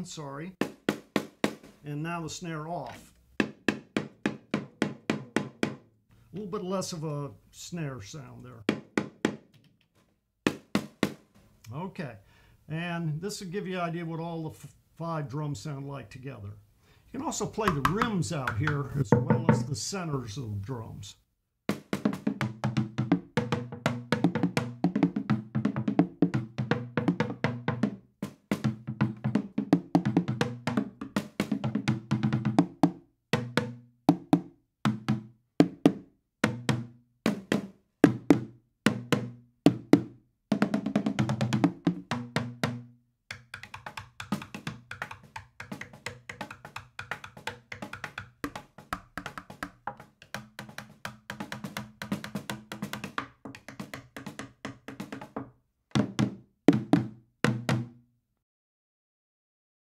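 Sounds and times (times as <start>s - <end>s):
plastic trash can drums: 0.6s - 1.9s, 2.9s - 5.8s, 17.2s - 19.8s.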